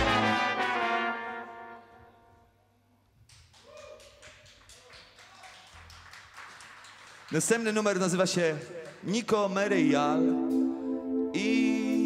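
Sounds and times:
brass band held chord: 0:00.0 - 0:02.1.

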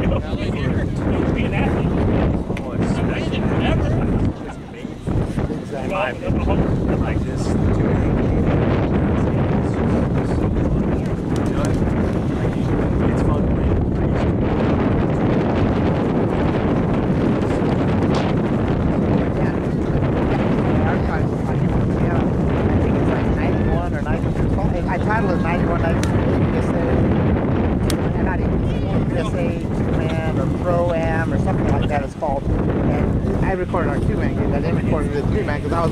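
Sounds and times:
faint voices: 0:00.0 - 0:35.9
wind buffeting microphone: 0:00.0 - 0:35.9.

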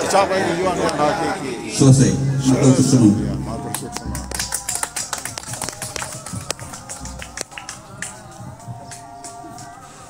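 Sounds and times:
people clapping: 0:03.4 - 0:10.0.

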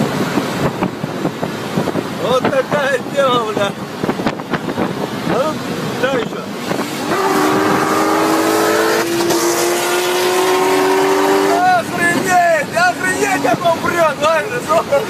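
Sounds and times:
sports car engine accelerating: 0:04.0 - 0:12.2
voices: 0:11.4 - 0:15.0.

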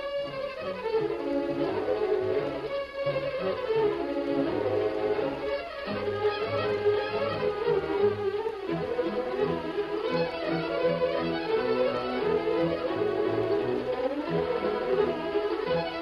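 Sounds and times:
orchestral string music: 0:00.0 - 0:16.0.

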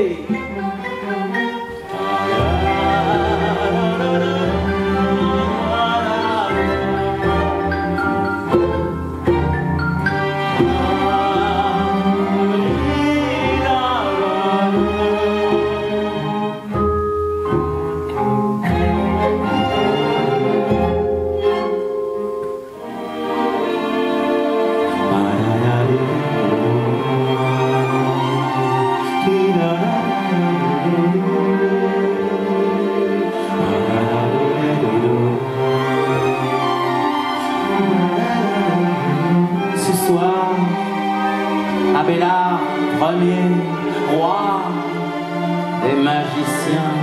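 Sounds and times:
string orchestra playing: 0:00.0 - 0:47.0
violins and cellos sustained chords: 0:00.0 - 0:47.0.

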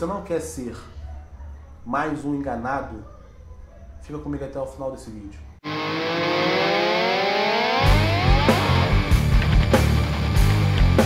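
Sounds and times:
distorted electric guitar chord: 0:05.6 - 0:09.6
heavy rock drums and bass: 0:07.8 - 0:11.0.

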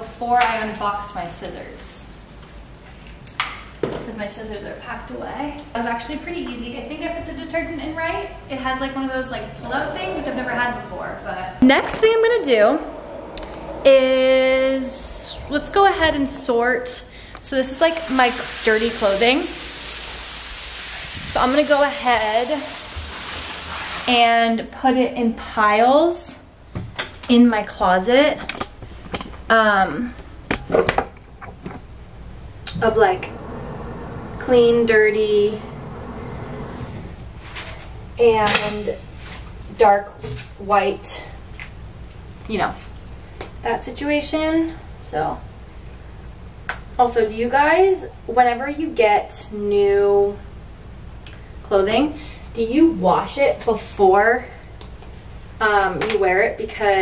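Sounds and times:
faint room tone: 0:04.0 - 0:19.0, 0:31.3 - 0:40.0.

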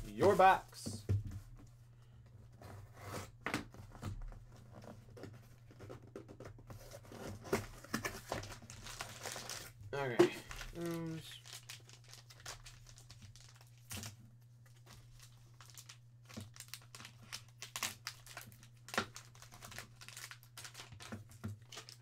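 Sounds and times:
plastic bags crinkling: 0:08.3 - 0:14.2, 0:14.8 - 0:22.0.

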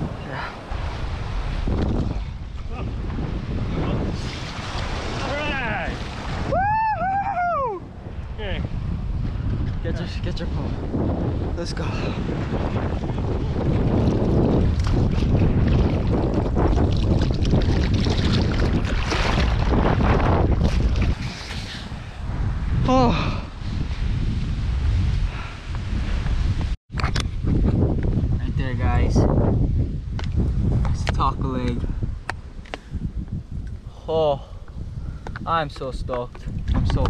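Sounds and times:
wind buffeting microphone: 0:00.0 - 0:37.0
surf splashing on rocks: 0:02.9 - 0:06.4.

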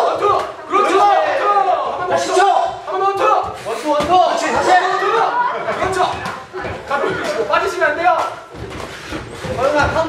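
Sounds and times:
people shouting: 0:00.0 - 0:06.4.

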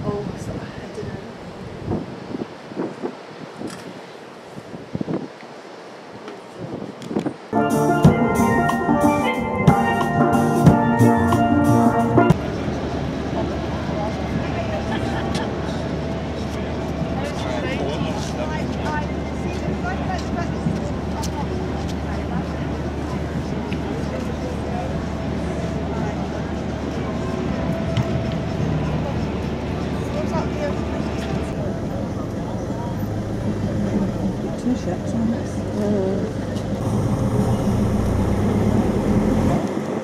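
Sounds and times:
people talking: 0:00.0 - 0:01.4, 0:12.3 - 0:39.8
steel pan band playing: 0:07.6 - 0:12.4.

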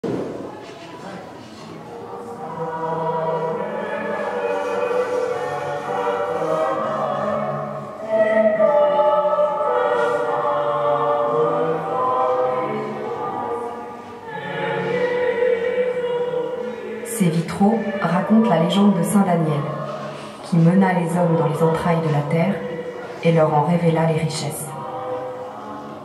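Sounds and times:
choir singing long notes: 0:01.7 - 0:26.0.

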